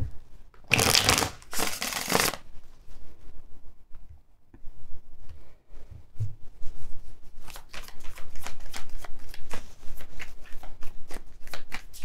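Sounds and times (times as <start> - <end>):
cards being shuffled: 0.7 - 2.4
faint handling of cards: 6.8 - 12.0.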